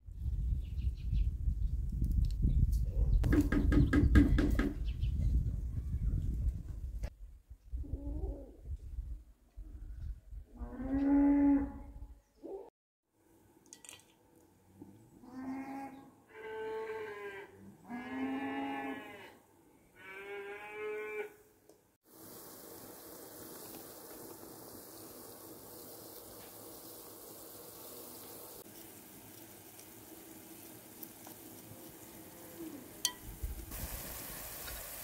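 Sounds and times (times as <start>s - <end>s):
cattle mooing: 15.2s - 19.4s, 20.0s - 21.4s
steady even hiss: 22.0s - 35.0s.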